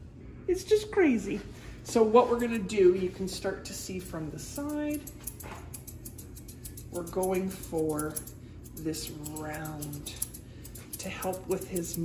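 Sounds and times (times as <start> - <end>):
grooming shears snipping hair: 3.2 - 12.0.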